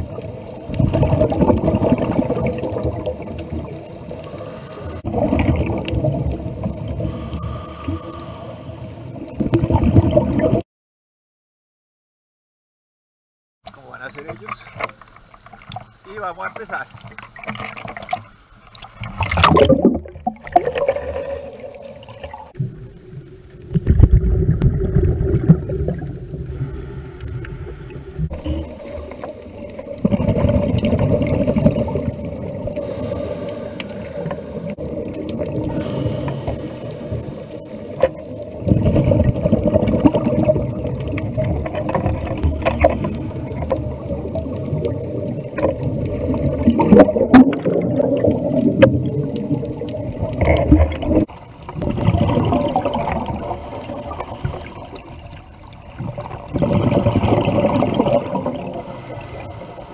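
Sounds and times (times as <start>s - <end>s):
regulator bubbles rumbling: 0.0s - 7.3s, 9.2s - 10.6s, 18.9s - 59.4s
underwater hissing: 4.0s - 5.4s, 6.9s - 9.3s, 26.4s - 30.0s, 31.5s - 39.5s, 42.2s - 44.6s, 52.8s - 55.1s, 58.7s - 59.9s.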